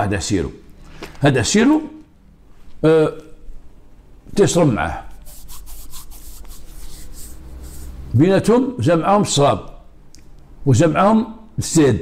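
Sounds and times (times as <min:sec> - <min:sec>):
hands rubbing together: 0:05.1 - 0:08.1.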